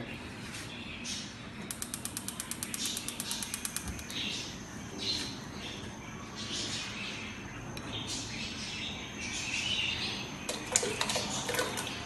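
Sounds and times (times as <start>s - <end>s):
stove spark igniter clicking: 1.7s - 4.2s.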